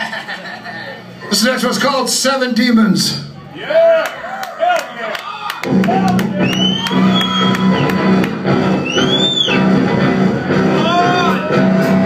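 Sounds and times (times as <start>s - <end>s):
heavy rock band playing: 5.7s - 12.0s.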